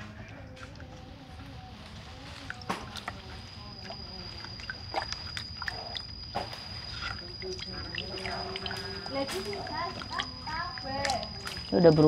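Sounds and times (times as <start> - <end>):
water sloshing and splashing: 0.0 - 12.0.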